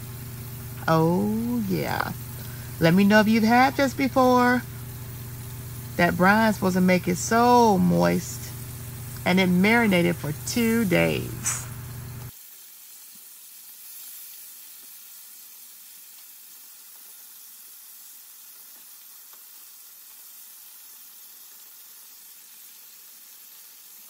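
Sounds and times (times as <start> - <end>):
chicken frying in hot oil: 0.0 - 24.0.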